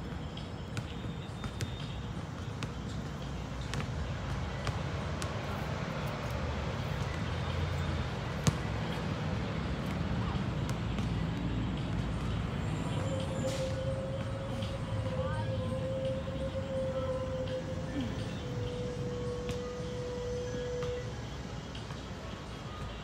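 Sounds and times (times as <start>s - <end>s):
low traffic rumble: 0.0s - 23.0s
distant voices: 0.1s - 23.0s
steady humming tone: 0.1s - 23.0s.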